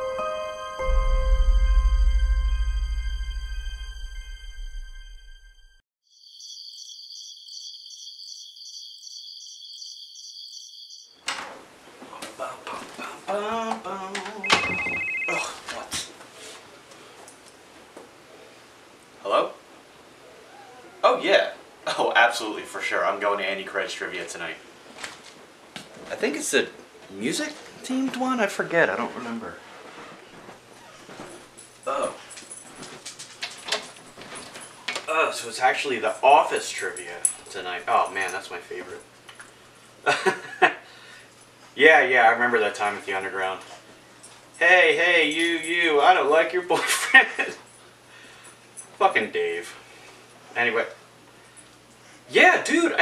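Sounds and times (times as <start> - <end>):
high-pitched pulsing sound effect: 14.4 - 15.5
dog whimpering: 20.4 - 21.2.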